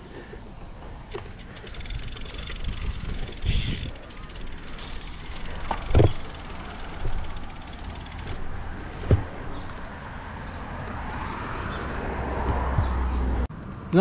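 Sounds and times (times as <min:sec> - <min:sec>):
wind rumbling on microphone: 0:01.8 - 0:07.5
sharp knocks from bike: 0:04.4 - 0:09.7.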